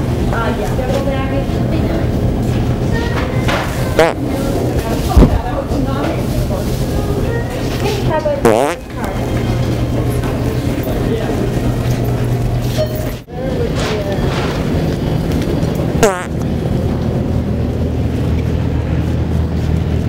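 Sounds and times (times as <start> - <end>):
background murmur: 0.0 - 16.9
low store hum: 0.0 - 20.0
fart sound toy: 4.0 - 4.2, 8.4 - 8.8, 16.0 - 16.3.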